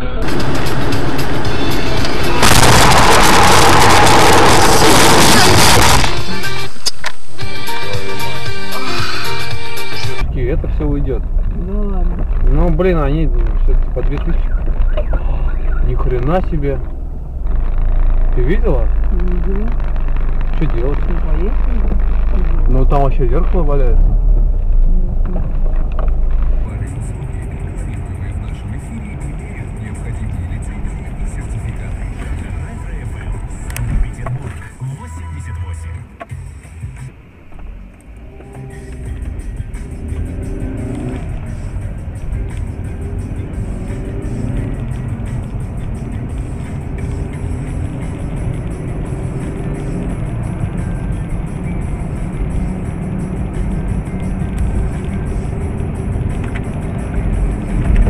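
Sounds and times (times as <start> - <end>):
car road noise rumble: 0.0 - 58.0
music playing: 0.0 - 58.0.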